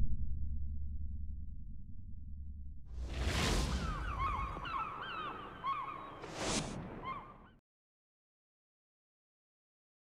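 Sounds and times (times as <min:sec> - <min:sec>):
low rumble: 0:00.0 - 0:03.9
whoosh: 0:02.9 - 0:04.4
seagull cries: 0:03.7 - 0:07.6.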